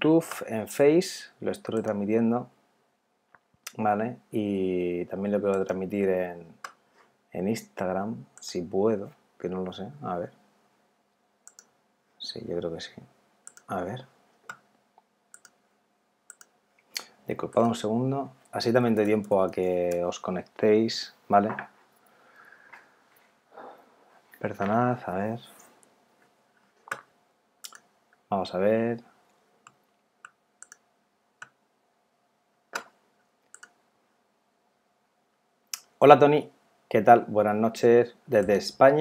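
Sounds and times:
keyboard and mouse clicks: 0:01.7 - 0:02.0, 0:11.4 - 0:11.7, 0:13.4 - 0:13.7, 0:14.4 - 0:15.6, 0:16.3 - 0:17.8, 0:26.8 - 0:27.9, 0:29.6 - 0:30.8, 0:32.7 - 0:33.8
computer mouse clicks: 0:11.4 - 0:11.7, 0:13.4 - 0:13.7, 0:15.3 - 0:15.6, 0:16.3 - 0:16.6, 0:29.6 - 0:30.8, 0:32.7 - 0:33.8.

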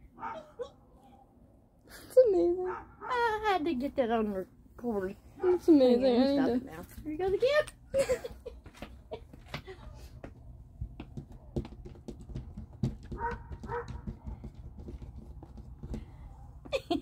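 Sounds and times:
taps and knocks on glass: 0:11.0 - 0:16.2.

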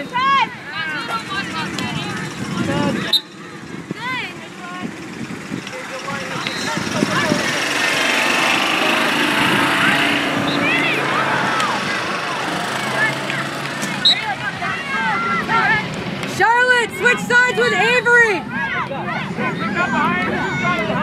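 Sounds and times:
babble of voices: 0:00.0 - 0:21.0
distant shouts and calls: 0:00.0 - 0:21.0
wind rumble: 0:00.4 - 0:16.2.

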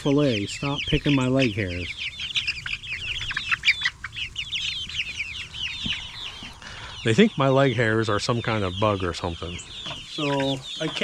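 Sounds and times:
chicks chirping: 0:00.0 - 0:11.0.

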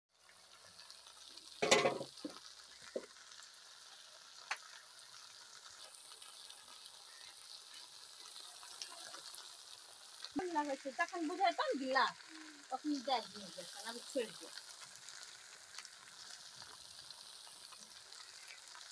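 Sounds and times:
okra sizzling in a pan: 0:00.1 - 0:18.9
metal clatter: 0:01.6 - 0:02.1.

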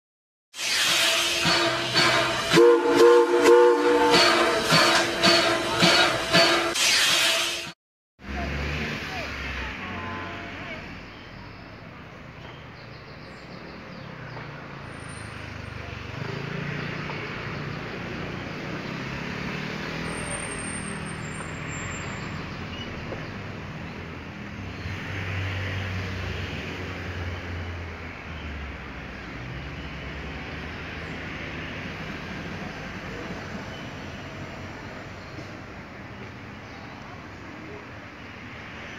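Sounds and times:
train whistle chord blasts: 0:00.6 - 0:07.8.

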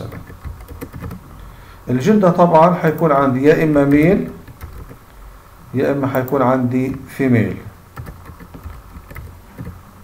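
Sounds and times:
keyboard keys clicking: 0:00.0 - 0:01.2, 0:03.8 - 0:05.0, 0:08.0 - 0:09.8
low steady rumble: 0:00.0 - 0:10.0.

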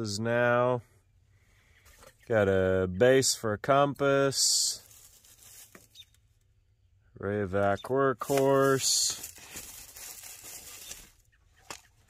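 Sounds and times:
small objects rustling: 0:04.7 - 0:06.2, 0:08.2 - 0:11.9.

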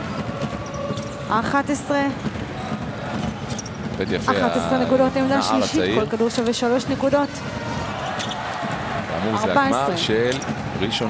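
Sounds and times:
basketballs bouncing on hardwood: 0:00.0 - 0:04.3
indoor basketball hall ambience: 0:00.0 - 0:11.0.

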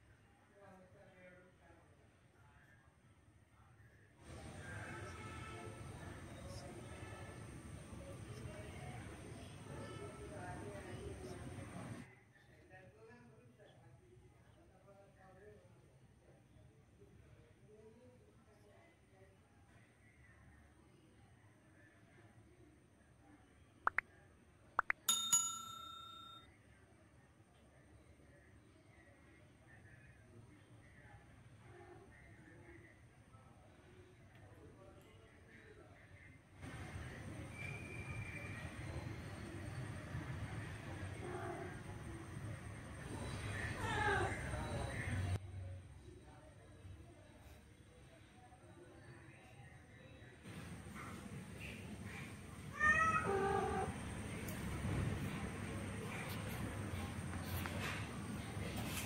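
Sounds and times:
bright bell chime: 0:25.0 - 0:26.5
cat meowing: 0:52.8 - 0:53.9.

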